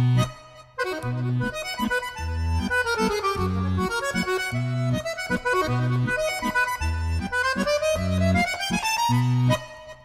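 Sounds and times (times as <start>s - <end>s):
accordion solo: 0.0s - 10.0s.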